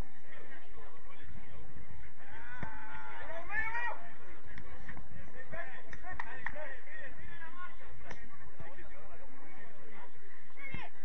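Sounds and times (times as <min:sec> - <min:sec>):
footballers shouting: 0:02.1 - 0:08.7.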